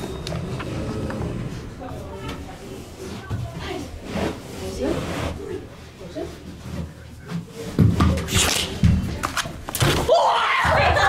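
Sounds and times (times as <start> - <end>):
low voices talking: 0.2 - 6.2.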